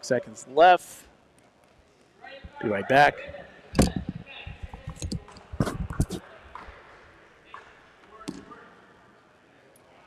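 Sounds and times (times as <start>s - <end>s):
balls striking wooden gym floor: 2.5s - 8.6s.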